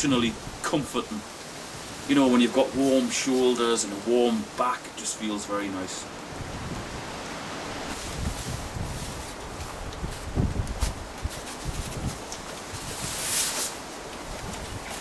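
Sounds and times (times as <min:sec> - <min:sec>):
wind buffeting microphone: 0:06.3 - 0:15.0
nylon jacket rustling: 0:07.8 - 0:15.0
short swishing hiss: 0:12.8 - 0:13.8.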